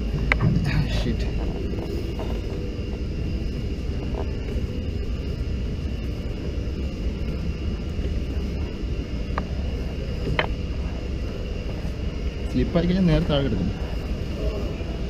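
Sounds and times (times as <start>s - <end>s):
low rumble: 0.0s - 15.0s.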